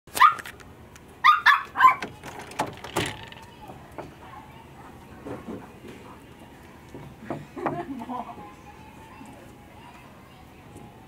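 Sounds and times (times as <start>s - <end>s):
puppy barking high-pitched: 0.1s - 0.5s, 1.2s - 2.1s.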